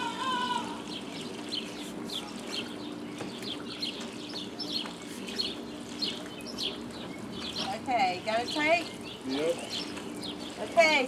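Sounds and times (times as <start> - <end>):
steady low hum: 0.0 - 11.0
small bird chirping: 0.9 - 11.0.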